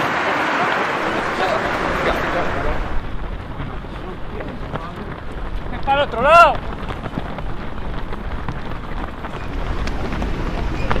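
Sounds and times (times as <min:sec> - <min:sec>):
scattered voices: 0:00.0 - 0:08.4
runners' footsteps: 0:00.6 - 0:11.0
wind on microphone: 0:00.9 - 0:11.0.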